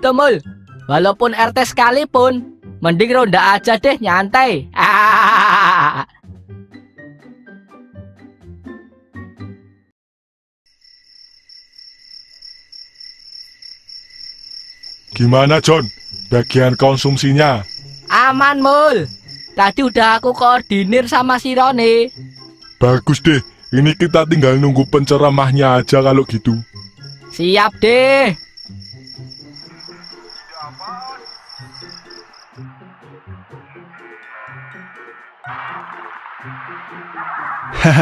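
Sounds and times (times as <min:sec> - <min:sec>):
soft background music: 0:00.0 - 0:05.0, 0:05.7 - 0:09.9, 0:15.2 - 0:38.0
crickets chirping: 0:10.7 - 0:32.8.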